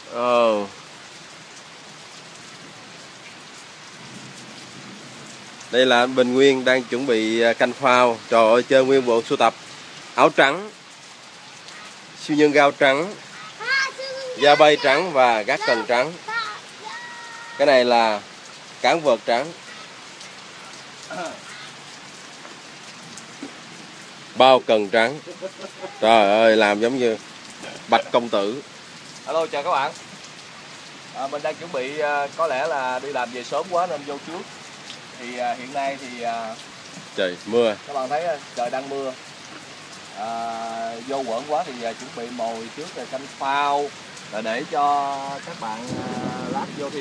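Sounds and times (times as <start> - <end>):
steady rain falling: 0.0 - 47.0.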